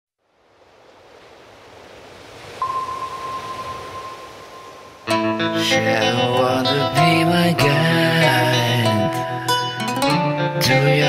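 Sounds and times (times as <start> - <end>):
rushing underwater noise: 0.4 - 7.0
steady high tone: 2.6 - 7.2.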